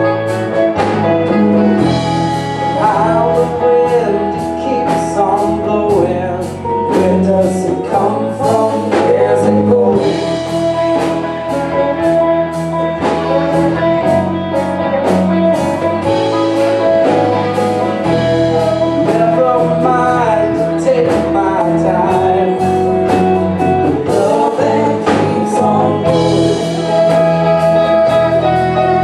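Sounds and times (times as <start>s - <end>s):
saxophone: 0.0s - 4.8s, 9.2s - 20.8s, 21.9s - 29.0s
live blues-funk band: 0.0s - 29.0s
woman singing: 24.0s - 27.1s.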